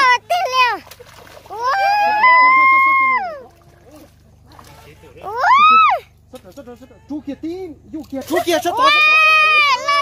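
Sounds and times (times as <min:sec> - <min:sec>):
fish splashing in water: 0:00.0 - 0:06.5.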